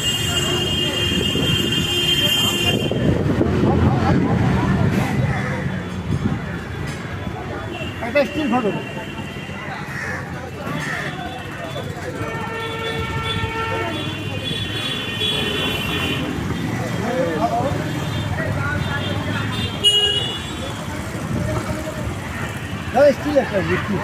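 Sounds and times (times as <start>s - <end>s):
vehicle horn blasts: 0.0s - 3.1s, 19.5s - 20.6s
street traffic rumbling: 0.0s - 24.0s.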